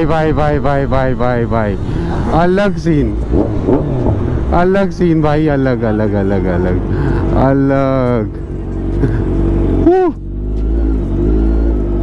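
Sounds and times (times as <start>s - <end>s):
motorcycle engine running at low revs: 0.0s - 12.0s.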